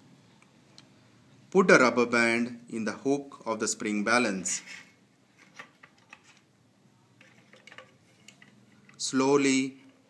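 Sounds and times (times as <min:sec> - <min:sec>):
faint clicks and taps: 0:07.2 - 0:09.0.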